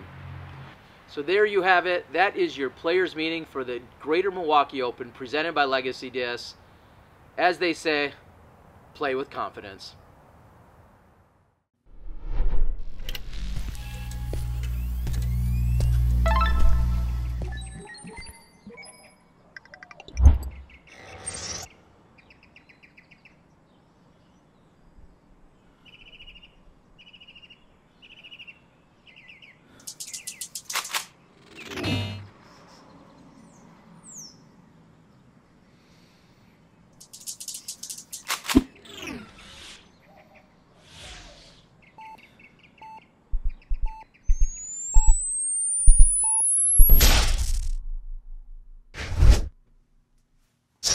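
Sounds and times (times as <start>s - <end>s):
swish: 11.9s - 13.2s, 48.9s - 49.6s
whoosh: 11.9s - 13.7s
bird chirping trills: 25.8s - 31.8s, 37.0s - 47.0s
rapid sharp clicks: 29.8s - 31.1s, 37.0s - 38.6s
faint chirps: 40.8s - 46.9s
short beeps: 43.8s - 47.0s
rising high whistle: 44.4s - 47.0s.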